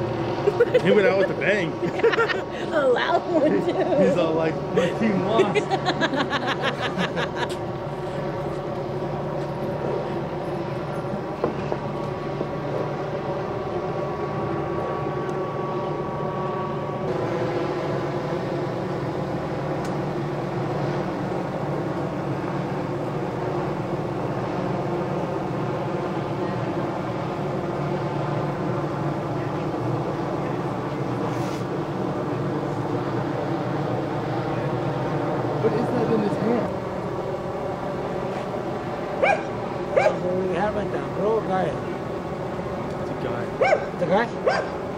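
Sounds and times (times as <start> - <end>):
vehicle engines idling: 0.0 - 44.9.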